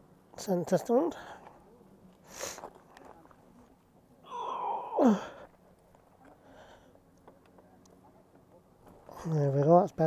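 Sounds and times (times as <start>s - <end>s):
man groaning with effort: 4.3s - 5.4s.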